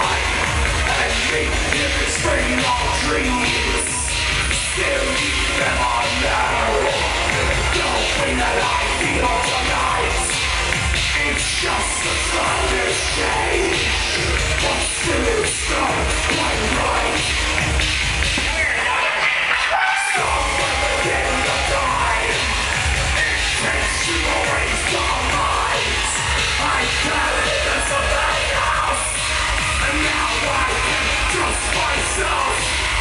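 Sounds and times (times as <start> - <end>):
live band music with heavy bass: 0.0 - 33.0.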